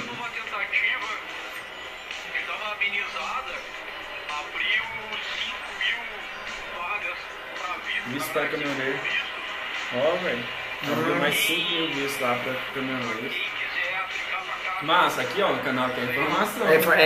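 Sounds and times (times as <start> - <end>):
man talking: 0.0 - 1.2, 4.3 - 9.2, 9.9 - 17.0
background music: 0.0 - 17.0
room voices: 0.0 - 17.0.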